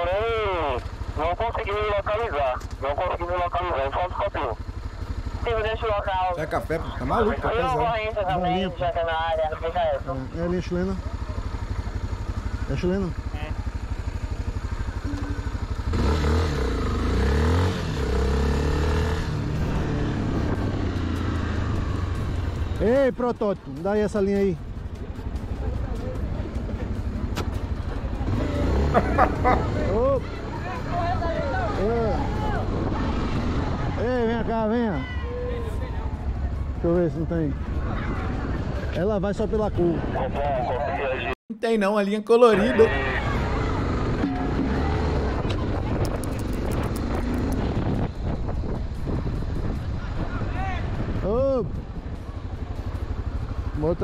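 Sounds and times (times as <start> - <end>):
motorcycle engine idling: 0.0 - 32.2, 33.1 - 38.9, 51.3 - 54.0
voices calling out: 24.6 - 34.0, 42.4 - 46.1.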